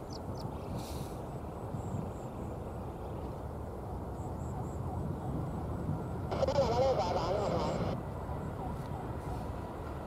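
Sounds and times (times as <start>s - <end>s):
jet engine rumble: 0.0s - 10.0s.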